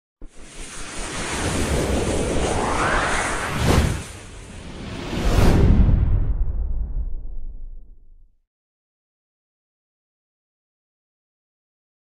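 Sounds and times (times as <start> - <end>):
rushing whoosh sound effect: 0.2 - 7.8.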